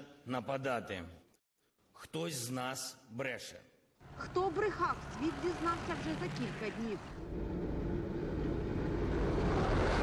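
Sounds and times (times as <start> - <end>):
tracked vehicle engine drone: 4.0 - 10.0.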